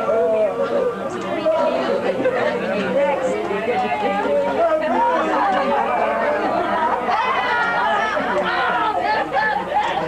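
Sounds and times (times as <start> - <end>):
crowd party chatter: 0.0 - 10.0.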